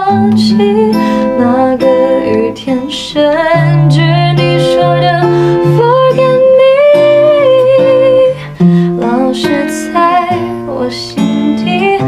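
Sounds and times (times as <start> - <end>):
acoustic guitar: 0.0 - 12.0
woman singing pop song: 0.0 - 12.0.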